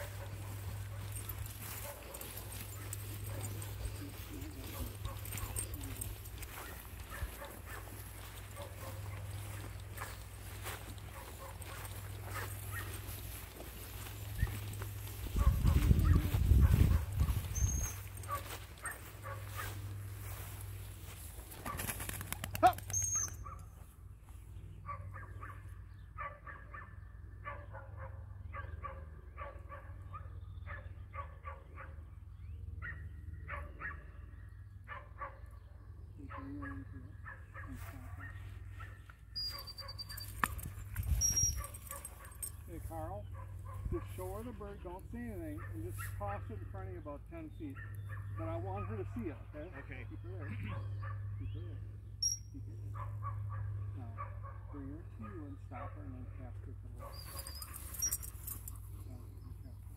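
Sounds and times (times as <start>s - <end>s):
dog barking and yipping: 0.0s - 10.2s, 10.8s - 20.0s, 21.6s - 23.7s, 36.3s - 42.6s, 57.0s - 58.8s
rustling through tall grass: 0.0s - 21.8s
thin high chirps: 52.2s - 52.5s.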